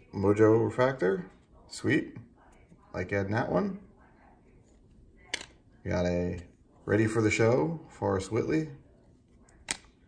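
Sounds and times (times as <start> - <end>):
man talking: 0.0 - 2.2, 2.9 - 3.8, 5.8 - 8.8.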